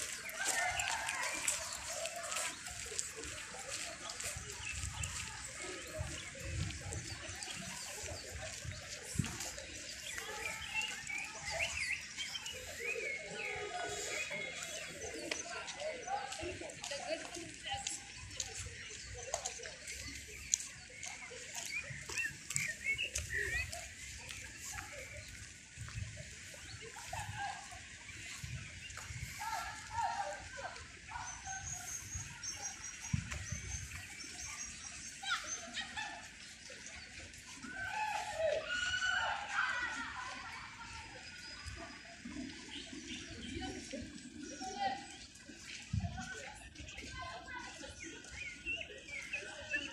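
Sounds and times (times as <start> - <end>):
murmur of voices: 0.0 - 49.9
small birds chirping and singing: 0.0 - 49.9.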